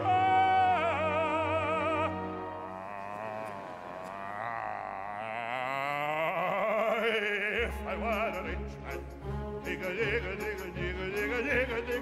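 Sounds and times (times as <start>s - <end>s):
operatic man singing with vibrato: 0.0s - 12.0s.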